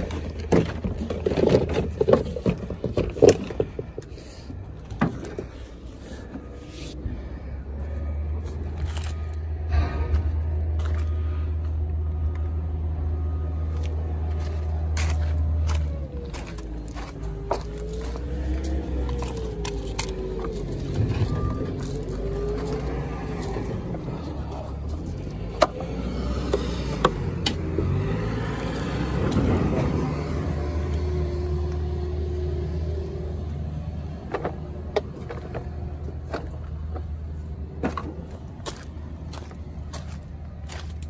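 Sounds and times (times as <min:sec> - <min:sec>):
engine humming: 0:00.0 - 0:41.0.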